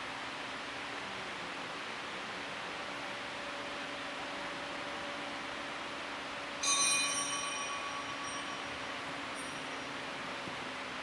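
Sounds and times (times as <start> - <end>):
room noise hiss: 0.0 - 11.0
small bell ringing: 6.6 - 10.0.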